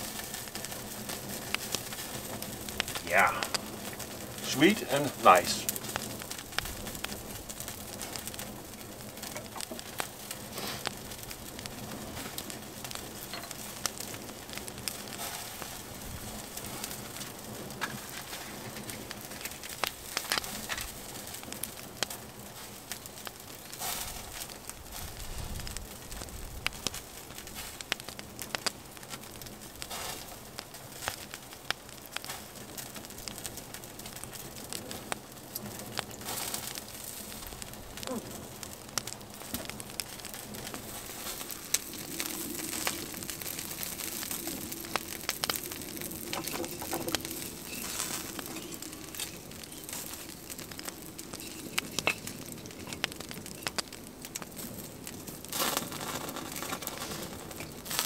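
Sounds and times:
wood fire crackling: 0.0s - 58.0s.

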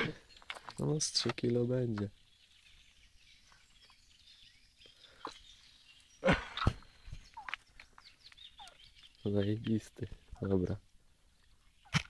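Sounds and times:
faint bird calls: 2.1s - 12.0s.

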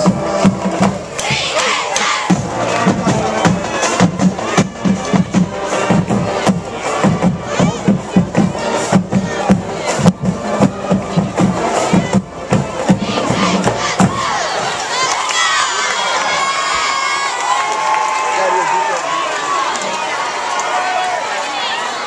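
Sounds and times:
loud beats: 0.0s - 14.9s
crowd of young voices cheering: 13.1s - 22.0s.

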